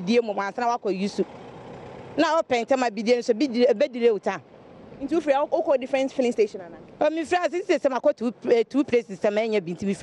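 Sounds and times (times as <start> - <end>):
distant road traffic hum: 0.0 - 10.0
woman speaking: 5.0 - 10.0.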